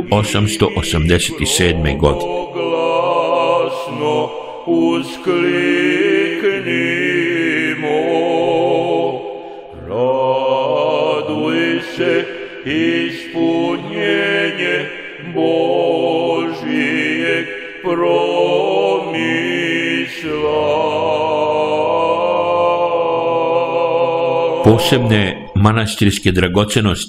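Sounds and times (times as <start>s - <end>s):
man chanting: 0.0s - 27.0s.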